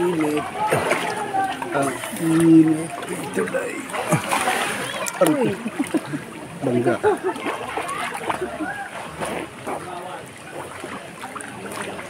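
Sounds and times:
pool water splashing: 0:00.0 - 0:12.0
voices: 0:00.0 - 0:12.0.

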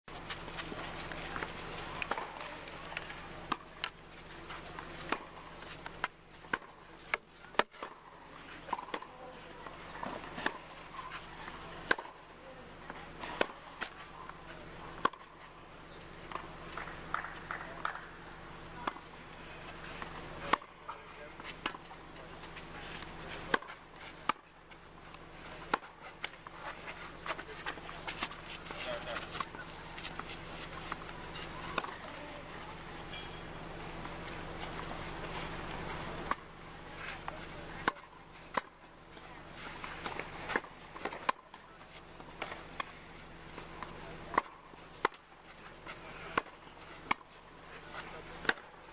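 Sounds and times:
steady low hum: 0:00.1 - 0:48.9.

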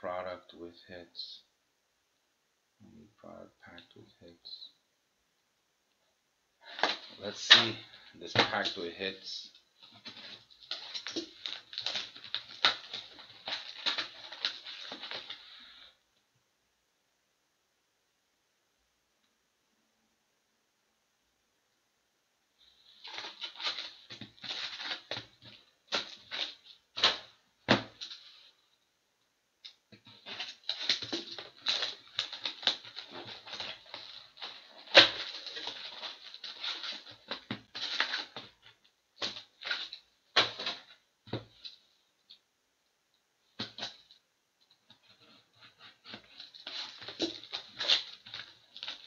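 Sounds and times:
foil packs crinkling: 0:09.8 - 0:15.8, 0:22.9 - 0:28.4, 0:30.0 - 0:41.7, 0:44.9 - 0:49.0.

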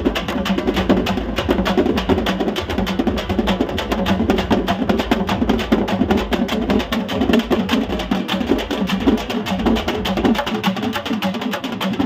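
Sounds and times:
drum band fast rhythm: 0:00.0 - 0:12.0.

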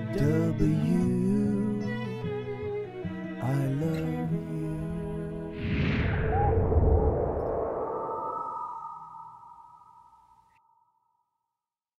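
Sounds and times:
deep rumble: 0:05.6 - 0:10.1
whoosh: 0:05.6 - 0:10.3
sustained ringing tone: 0:07.1 - 0:10.6.

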